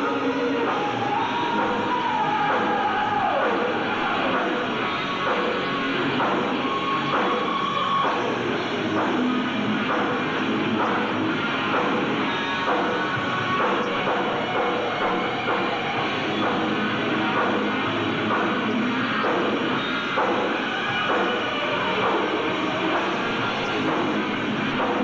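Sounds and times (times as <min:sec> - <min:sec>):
hard rock band playing live: 0:00.0 - 0:25.0.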